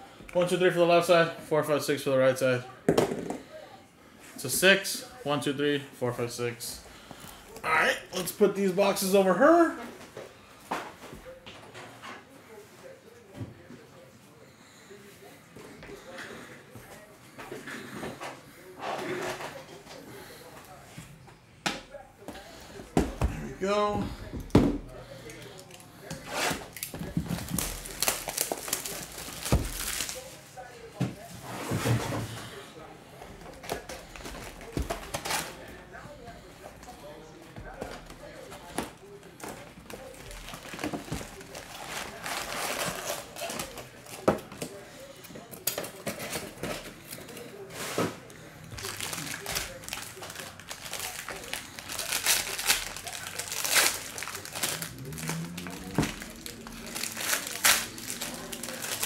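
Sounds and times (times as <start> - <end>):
foil wrappers crinkling: 25.2 - 30.4, 39.2 - 44.8, 48.8 - 59.0.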